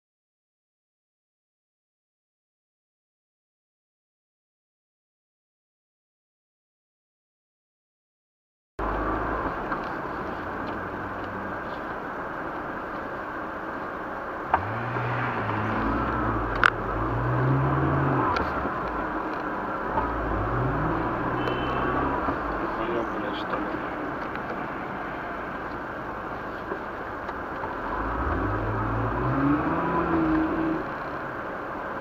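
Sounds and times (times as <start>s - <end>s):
car cabin road noise: 8.8s - 32.0s
car engine revving: 14.4s - 31.8s.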